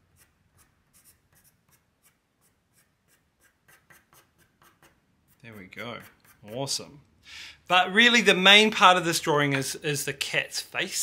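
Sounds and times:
pencil scratching on paper: 0.0 - 6.9.

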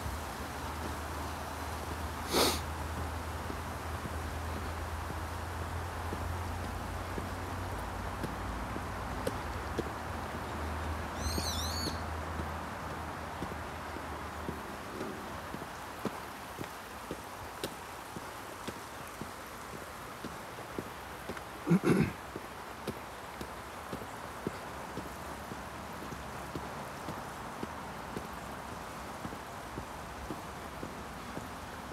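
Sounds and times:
footsteps on asphalt: 0.0 - 31.9
steady outdoor rush: 0.0 - 31.9
wavering bird call: 11.2 - 12.0.

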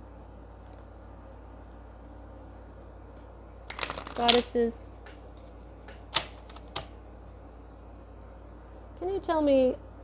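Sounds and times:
steady low hum: 0.0 - 10.0
cards being shuffled: 3.7 - 5.2.

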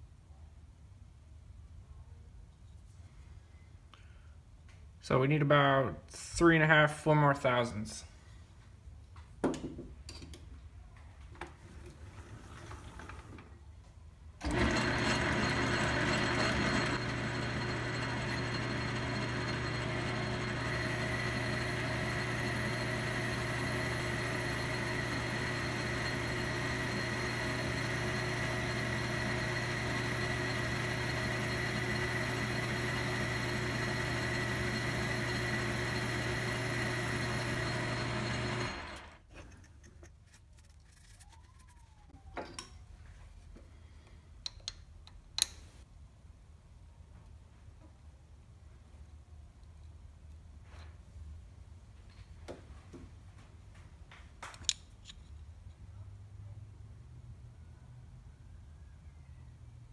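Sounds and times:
metal lathe motor humming: 14.4 - 39.2.

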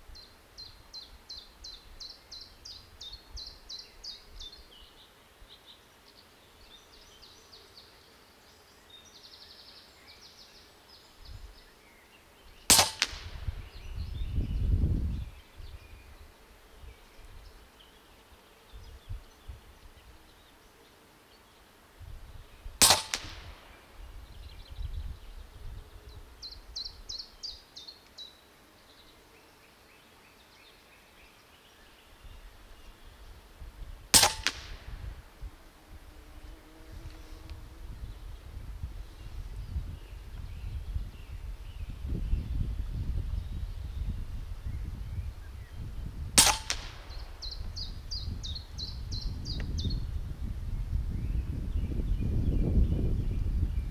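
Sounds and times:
air rifle shots: 12.7 - 13.7, 22.8 - 24.0, 34.1 - 35.3, 46.3 - 47.6.

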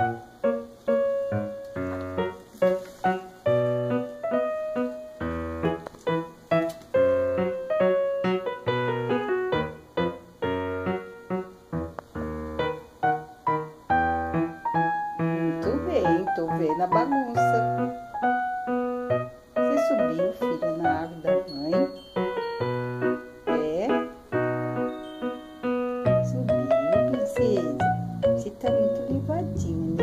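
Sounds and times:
lively piano music: 0.0 - 30.0.

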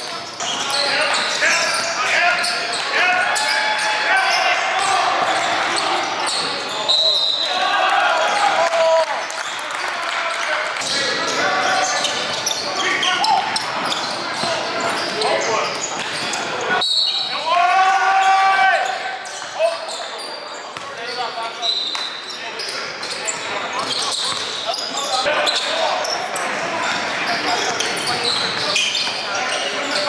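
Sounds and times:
players calling out: 0.2 - 30.0.

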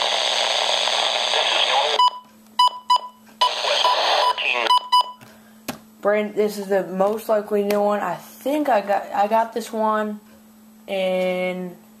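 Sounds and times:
radio broadcast through static: 0.0 - 2.1, 3.4 - 4.8.

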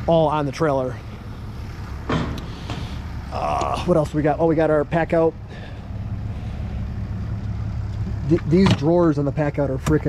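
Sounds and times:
engine idling rumble: 0.0 - 10.0.

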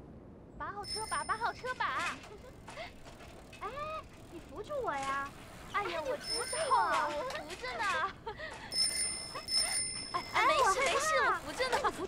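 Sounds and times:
bicycle freewheel clicking: 0.9 - 12.0.

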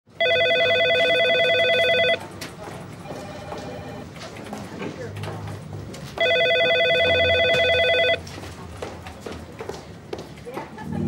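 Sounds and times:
electronic telephone ringing: 0.2 - 2.2, 3.0 - 4.0, 6.2 - 8.2.

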